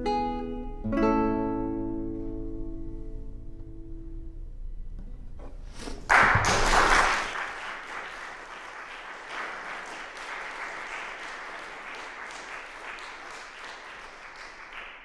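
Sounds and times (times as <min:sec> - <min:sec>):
classical guitar chord ringing: 0:00.0 - 0:05.3
audience applause: 0:06.0 - 0:15.0.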